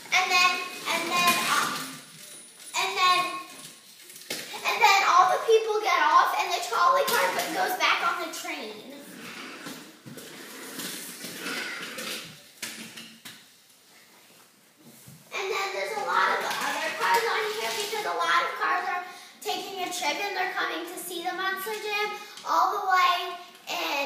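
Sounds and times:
young children talking: 0.0s - 2.0s, 15.3s - 24.0s.

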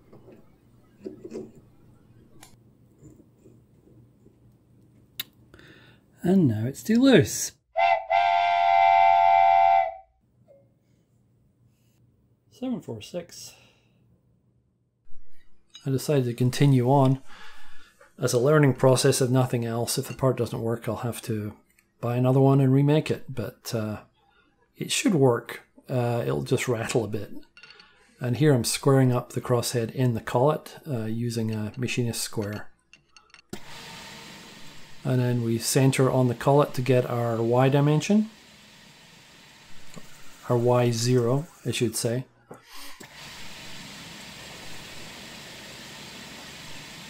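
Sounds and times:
steam whistle: 7.8s - 10.2s
milling spindle running: 33.5s - 41.7s.

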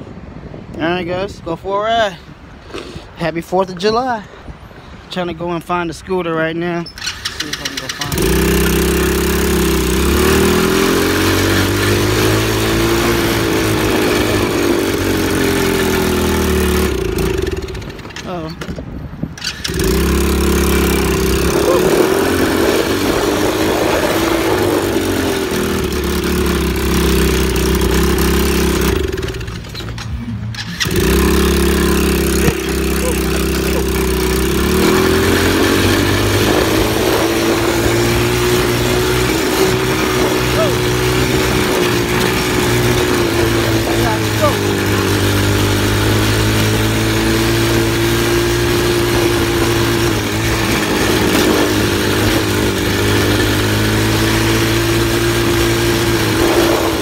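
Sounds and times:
small atv engine running: 6.9s - 18.6s, 19.3s - 57.0s.

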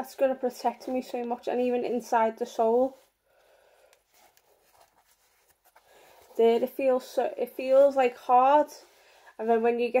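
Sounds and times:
soft rustles and ticks: 0.6s - 10.0s.

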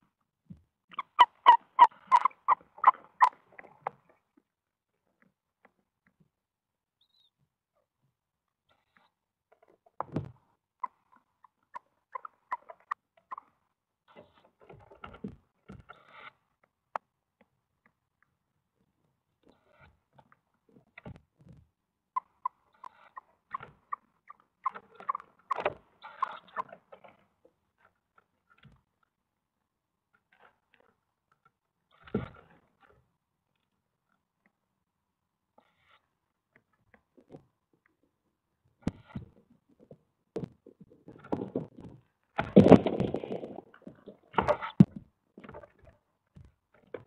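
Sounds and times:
owl chicks squeaking: 0.9s - 3.4s, 10.8s - 13.5s, 22.2s - 26.7s.

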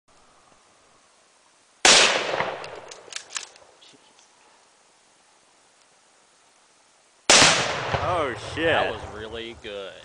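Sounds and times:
rifle shot with rolling echo: 1.8s - 3.0s, 7.3s - 9.0s
sharp cracks: 1.8s - 4.3s, 7.3s - 8.6s.

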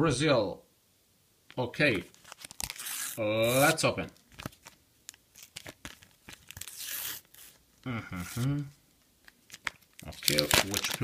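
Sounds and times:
paper packet tearing: 2.1s - 7.6s, 9.4s - 11.0s.

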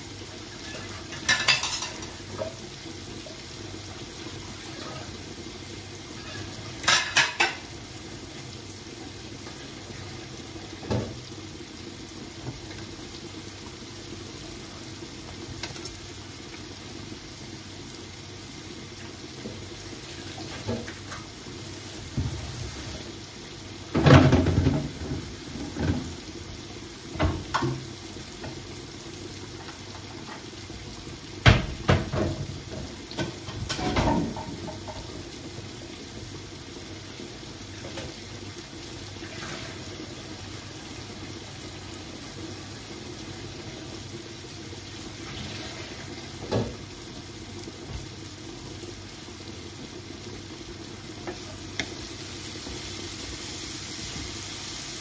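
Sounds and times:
vegetables sizzling in a pan: 0.0s - 55.0s.

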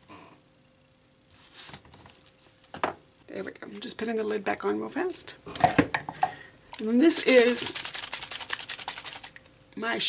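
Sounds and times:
spray bottle rattling when shaken: 6.7s - 9.4s.

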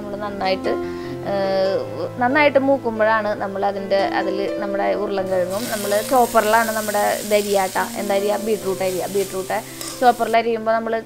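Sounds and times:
food sizzling in hot oil: 5.3s - 10.4s.

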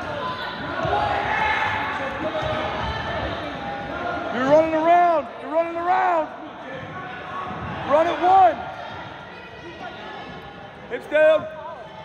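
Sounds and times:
murmur of spectators: 0.0s - 12.0s.

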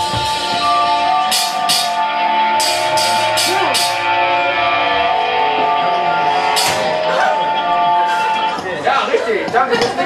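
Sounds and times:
noise music drone: 0.0s - 10.0s.

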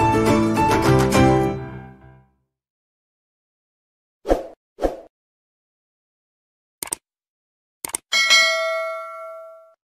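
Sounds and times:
notification bell ding: 8.1s - 9.8s.

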